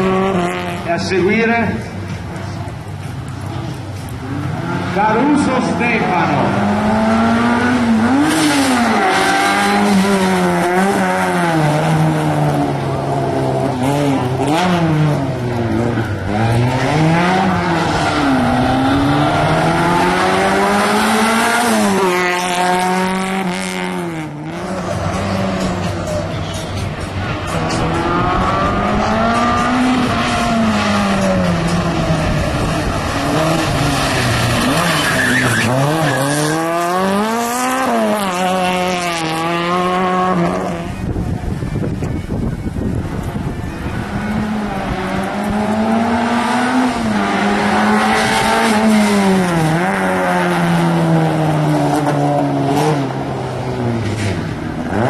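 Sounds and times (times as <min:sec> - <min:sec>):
rally car engine revving: 0:00.0 - 0:55.0.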